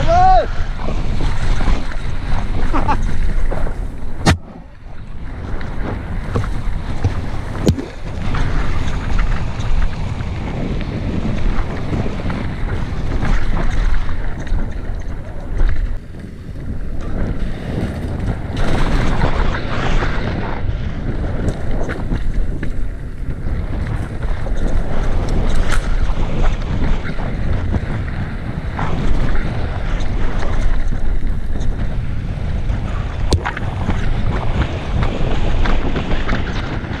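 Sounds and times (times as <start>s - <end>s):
wind buffeting microphone: 0.0s - 37.0s
bike knocking and rattling: 5.3s - 20.4s.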